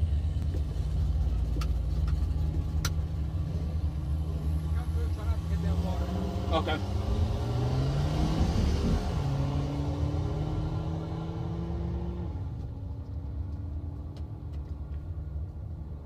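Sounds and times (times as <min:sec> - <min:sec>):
car engine pulling forward: 0:00.0 - 0:14.8.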